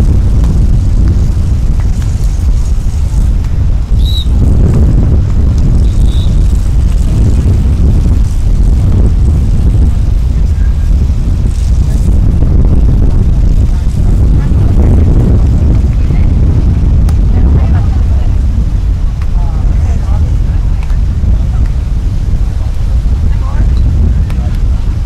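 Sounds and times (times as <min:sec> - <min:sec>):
wind buffeting microphone: 0:00.0 - 0:25.0
short high chirps: 0:04.0 - 0:04.3.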